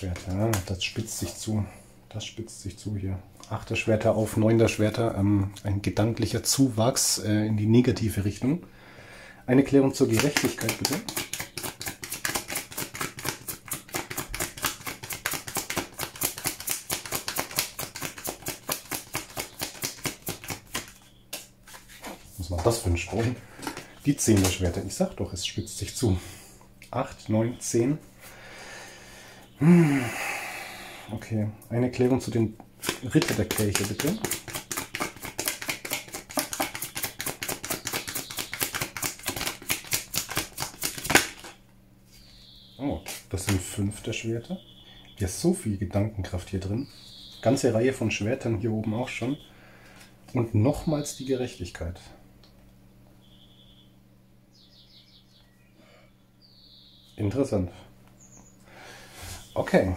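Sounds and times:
cards being shuffled: 0.0s - 1.4s, 10.0s - 24.8s, 32.8s - 41.6s.

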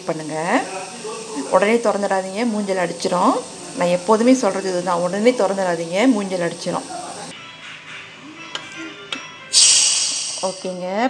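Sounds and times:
steam hissing from pressure cooker: 0.0s - 7.3s, 9.5s - 11.0s.

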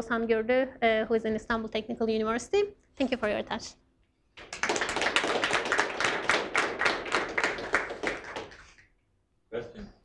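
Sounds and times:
audience applauding: 4.4s - 8.9s.

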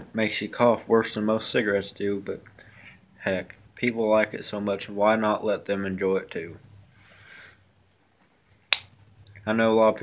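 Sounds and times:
faint hiss: 6.0s - 10.0s.

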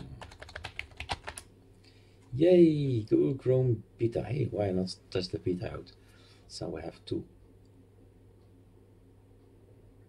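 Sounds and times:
computer keyboard typing: 0.0s - 1.5s.

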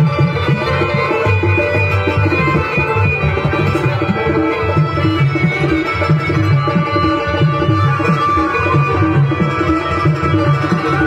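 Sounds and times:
dholak drums rhythm: 0.0s - 11.0s
harmonium chords and melody: 0.0s - 11.0s.

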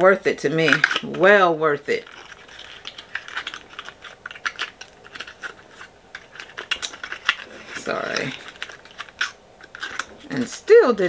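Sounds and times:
wrapping being unwrapped: 0.6s - 11.0s.

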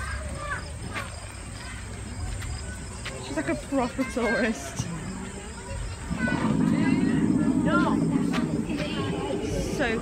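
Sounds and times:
dinosaur roar over loudspeaker: 6.1s - 10.0s.

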